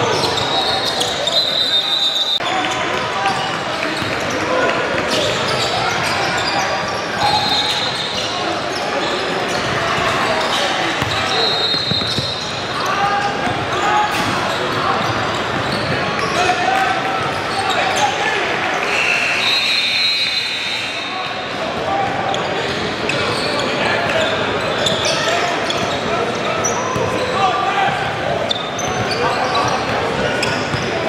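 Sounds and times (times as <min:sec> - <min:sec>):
murmur of crowd voices: 0:00.0 - 0:31.0
ball bouncing on hardwood court: 0:11.0 - 0:12.3.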